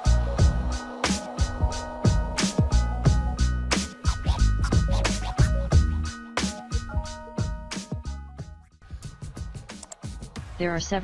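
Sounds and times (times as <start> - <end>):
music with drums and bass: 0.0 - 10.6.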